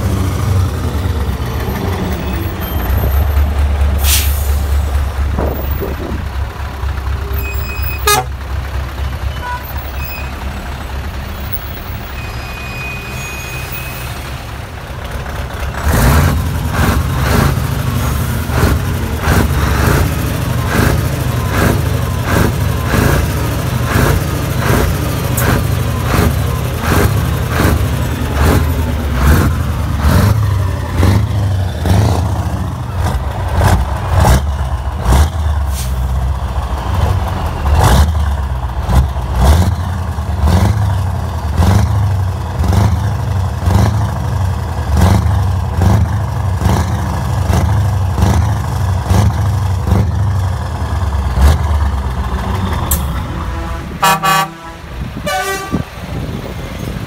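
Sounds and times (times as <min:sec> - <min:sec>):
diesel truck engine running: 0:00.0 - 0:57.0.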